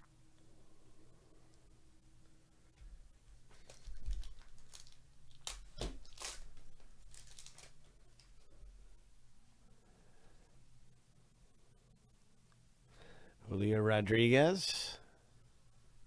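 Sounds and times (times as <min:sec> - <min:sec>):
foil wrapper ripping and crinkling: 0:03.5 - 0:08.4
cards rustling: 0:03.5 - 0:08.6.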